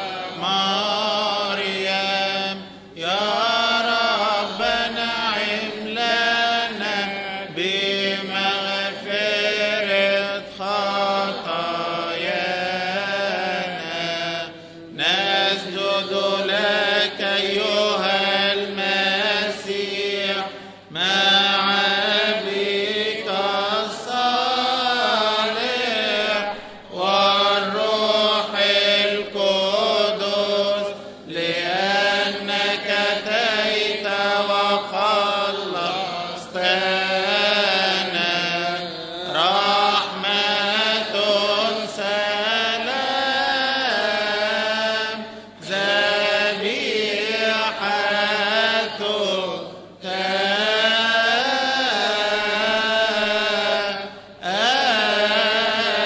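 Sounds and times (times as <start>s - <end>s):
liturgical chant sung to a vowel: 0.0s - 56.0s.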